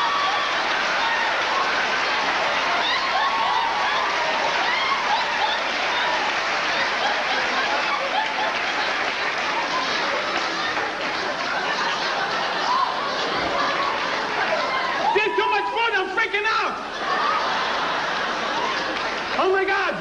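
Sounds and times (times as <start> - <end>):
audience applauding: 0.0 - 20.0
audience laughing: 0.1 - 20.0.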